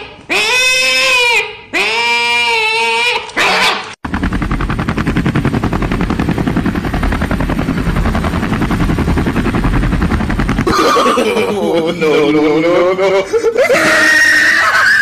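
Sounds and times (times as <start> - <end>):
cat-like yowls: 0.4 - 3.9, 13.6 - 15.0
pulsing motor sound: 4.0 - 12.8.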